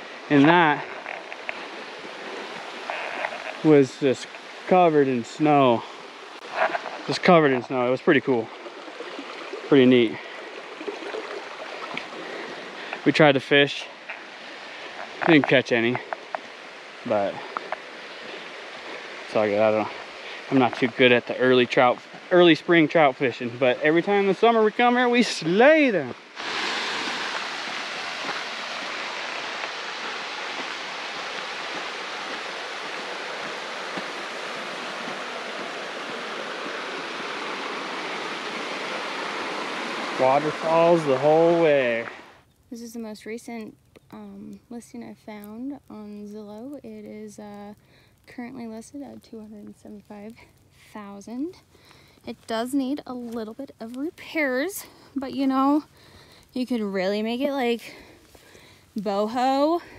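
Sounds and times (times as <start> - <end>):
creek water running: 0.0 - 59.9.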